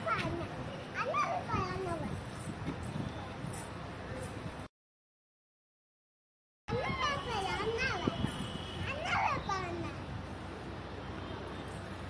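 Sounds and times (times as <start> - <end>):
child talking: 0.0 - 2.2, 6.7 - 10.1.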